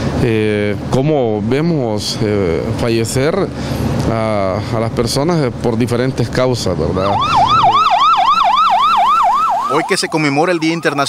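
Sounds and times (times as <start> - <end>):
ambulance siren yelping: 7.0 - 11.0.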